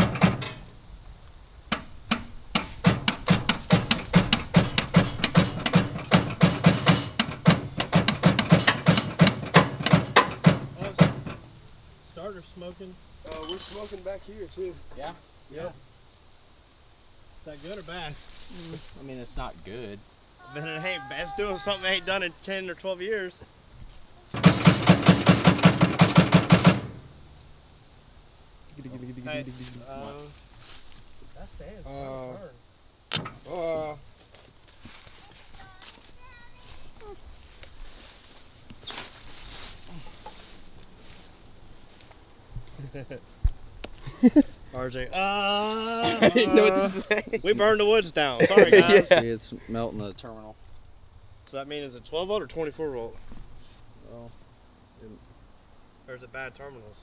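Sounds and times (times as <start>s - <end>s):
hammer banging on metal: 0.0s - 0.7s, 1.7s - 11.6s, 24.3s - 27.2s.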